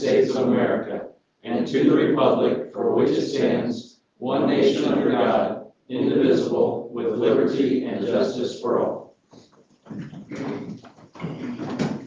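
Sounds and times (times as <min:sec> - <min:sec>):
office chairs creaking: 0:09.2 - 0:12.0
shuffling: 0:09.2 - 0:12.0.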